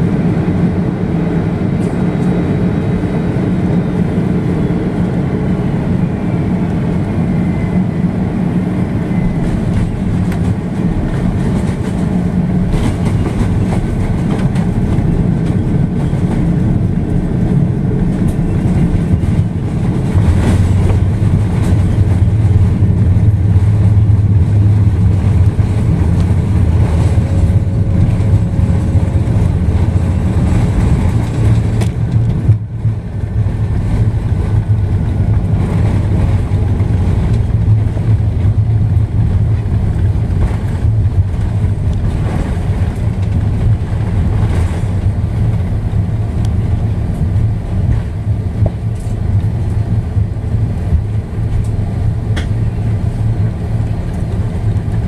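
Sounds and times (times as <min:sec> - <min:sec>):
aircraft engine noise: 0:00.0 - 0:55.0.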